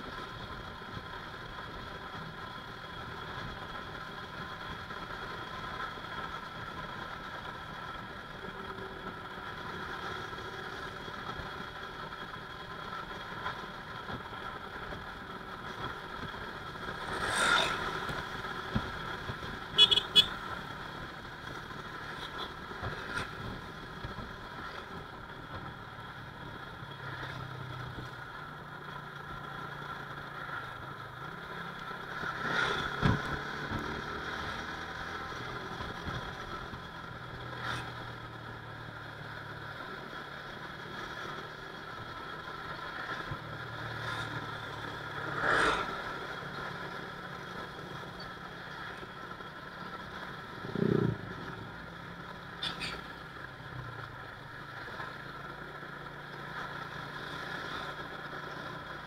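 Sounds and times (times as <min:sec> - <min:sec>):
motorcycle engine and road noise: 0:00.0 - 0:59.0
passing traffic: 0:00.0 - 0:59.0
horn toots: 0:19.7 - 0:20.4.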